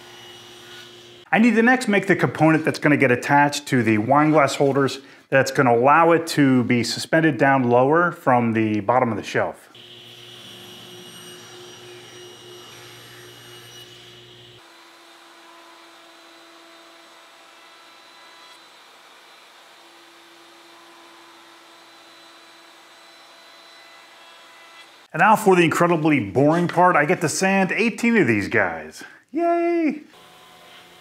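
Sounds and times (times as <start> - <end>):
router whining: 9.8 - 25.1, 30.1 - 31.0
table saw running: 9.8 - 25.1, 30.1 - 31.0.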